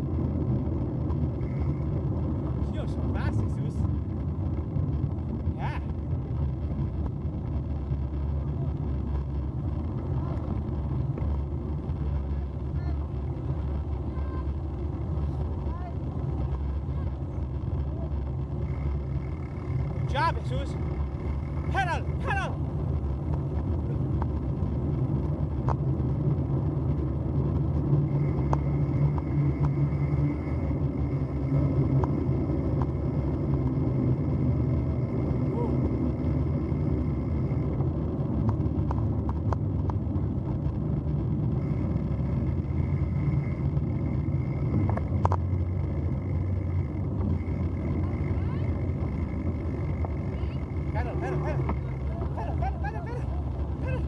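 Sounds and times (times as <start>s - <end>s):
bicycle tyres rolling on dirt: 0.0s - 54.0s
wind noise on microphone: 0.0s - 54.0s.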